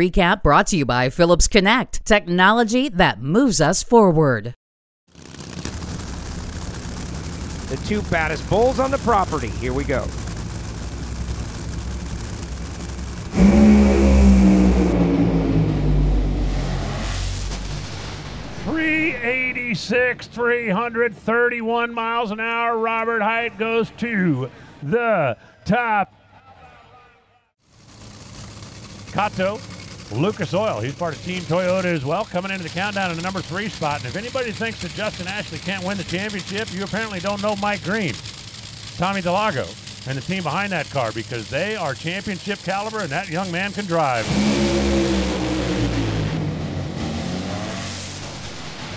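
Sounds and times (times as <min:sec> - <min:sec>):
drag-racing engine rumbling: 0:05.1 - 0:24.8, 0:27.6 - 0:48.9.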